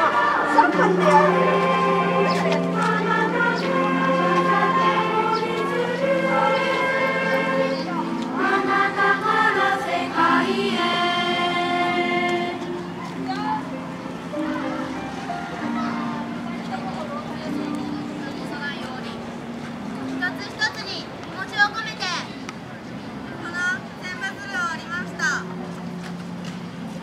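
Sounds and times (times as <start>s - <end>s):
choir singing long notes: 0.0s - 13.0s
people talking: 0.0s - 13.8s, 14.4s - 19.4s.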